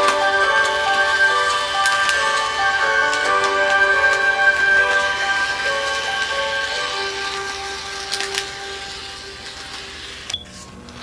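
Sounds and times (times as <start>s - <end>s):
sustained background music: 0.0s - 10.3s.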